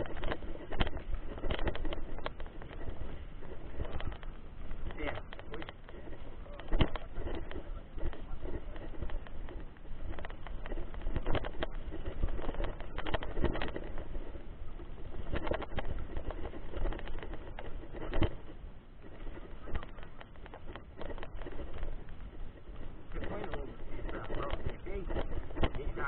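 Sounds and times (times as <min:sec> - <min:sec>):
bike clattering over stones: 0:00.0 - 0:26.0
low microphone rumble: 0:00.0 - 0:26.0
tyre and wind noise: 0:00.0 - 0:26.0.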